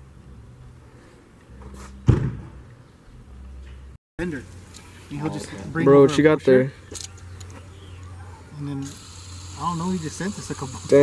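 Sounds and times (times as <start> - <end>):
loud thump: 2.0 - 2.6.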